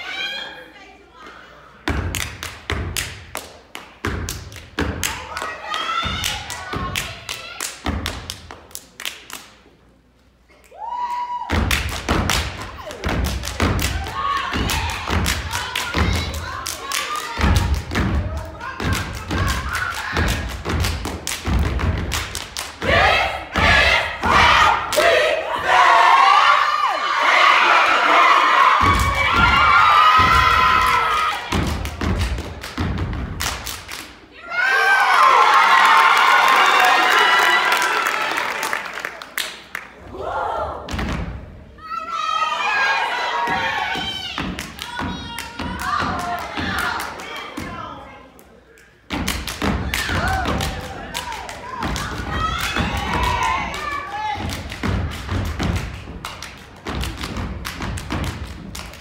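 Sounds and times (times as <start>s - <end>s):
stomping and clapping on wooden stage: 1.8s - 9.8s, 10.6s - 26.6s, 27.3s - 34.3s, 34.9s - 59.0s
crowd cheering and shouting: 5.2s - 7.0s, 22.8s - 31.7s, 34.3s - 38.8s, 41.8s - 48.0s, 49.8s - 55.1s.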